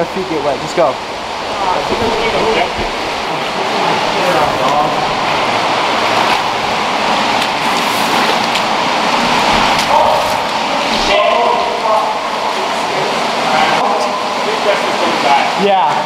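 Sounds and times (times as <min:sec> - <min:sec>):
indistinct voices: 0:00.0 - 0:16.0
loud steady rushing noise: 0:00.0 - 0:16.0.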